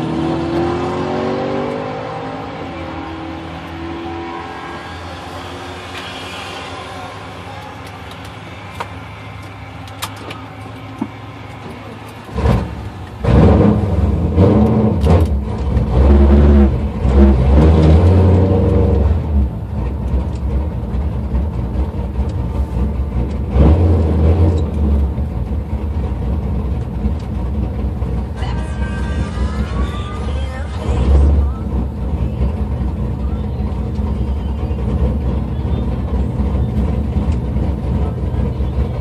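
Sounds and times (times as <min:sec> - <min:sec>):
car engine idling and revving: 0:00.0 - 0:39.0.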